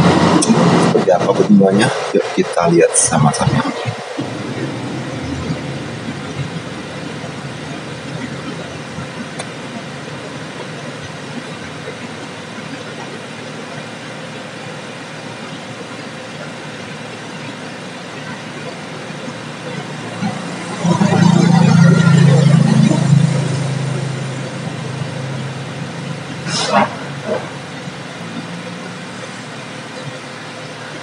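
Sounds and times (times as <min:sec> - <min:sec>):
faint hum: 0:00.0 - 0:31.0.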